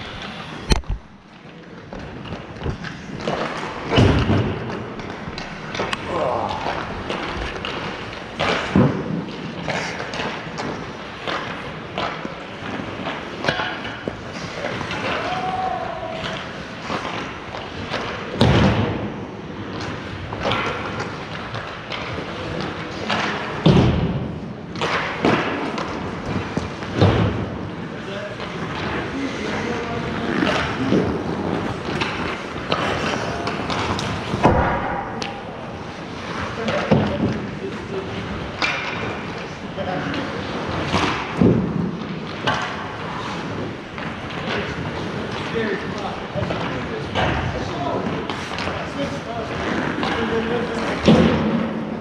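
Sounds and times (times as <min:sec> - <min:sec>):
skate blades scraping ice: 0:00.0 - 0:23.7, 0:24.7 - 0:34.8, 0:35.5 - 0:52.0
hockey pucks and sticks knocking: 0:00.0 - 0:52.0.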